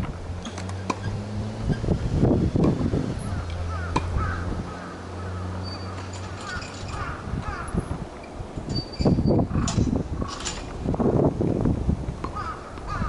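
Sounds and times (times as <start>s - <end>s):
low rumbling noise: 0.0s - 13.0s
crows cawing: 3.3s - 7.8s, 12.4s - 13.0s.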